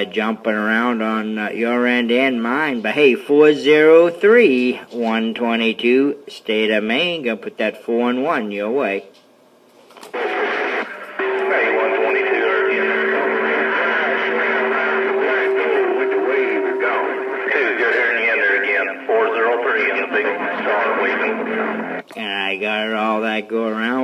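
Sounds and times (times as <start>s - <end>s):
tinny radio voices overlapping: 10.1s - 24.0s.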